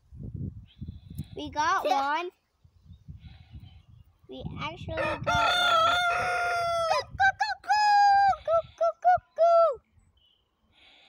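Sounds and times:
rooster crowing: 5.0s - 7.1s.

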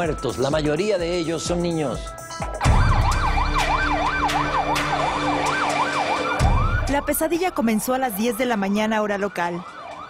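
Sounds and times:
siren in fast yelp: 2.6s - 10.0s.

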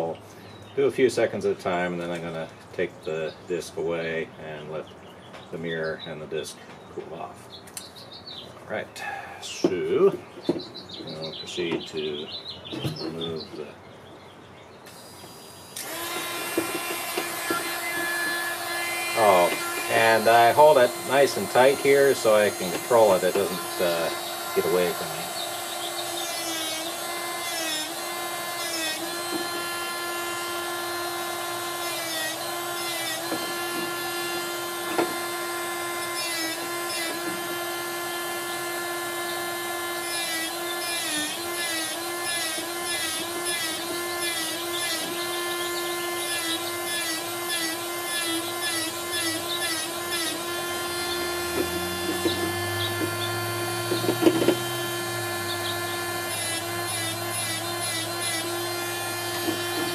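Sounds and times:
rotary tool grinding glass: 14.9s - 59.9s.

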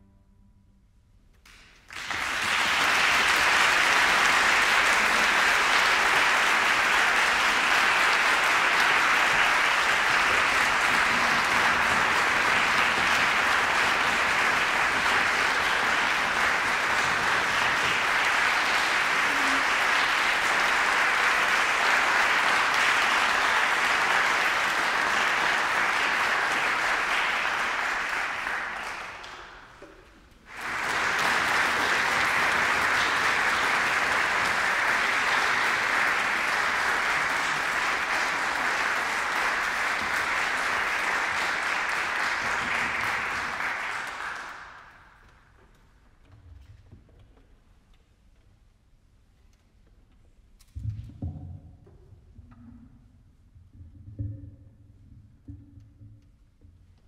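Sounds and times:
audience applause: 1.5s - 45.4s.

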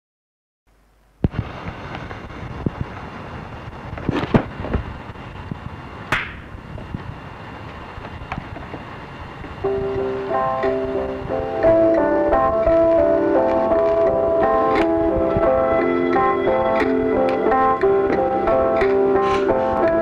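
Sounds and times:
crackling hissing noise: 0.7s - 20.0s
electronic keyboard melody: 9.6s - 20.0s.

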